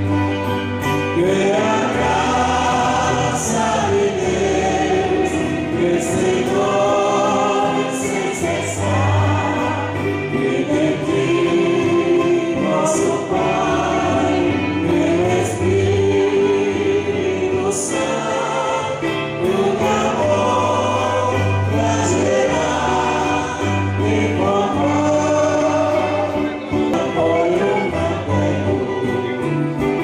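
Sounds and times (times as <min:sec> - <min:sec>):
congregation singing a hymn: 0:00.0 - 0:30.0.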